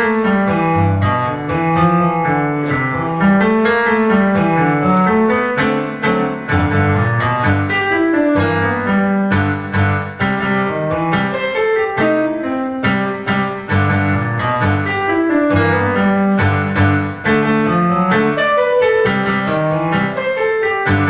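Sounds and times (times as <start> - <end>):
boogie piano piece: 0.0 - 21.0.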